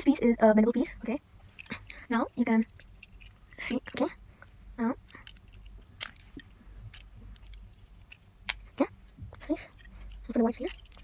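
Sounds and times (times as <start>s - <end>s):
plastic bricks clicking: 1.6s - 8.7s, 9.8s - 11.0s
plastic bricks snapping: 5.1s - 8.7s.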